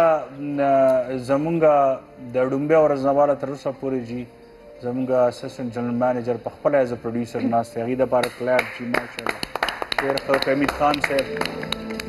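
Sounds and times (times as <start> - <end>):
people clapping: 8.2 - 12.0
man's voice: 10.0 - 11.8.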